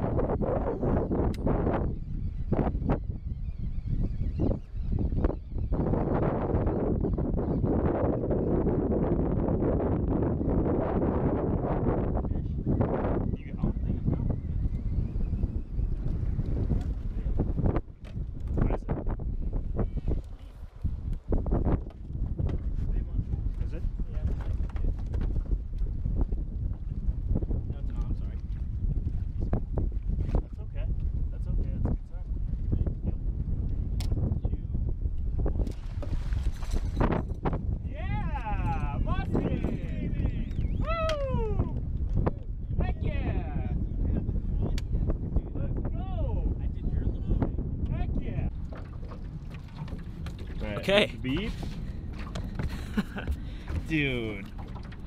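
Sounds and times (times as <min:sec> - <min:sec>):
wind buffeting microphone: 0:00.0 - 0:55.0
people yelling and whooping: 0:40.8 - 0:41.8.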